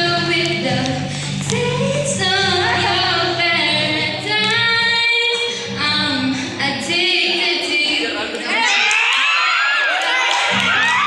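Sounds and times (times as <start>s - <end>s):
girl singing into microphone: 0.0s - 8.6s.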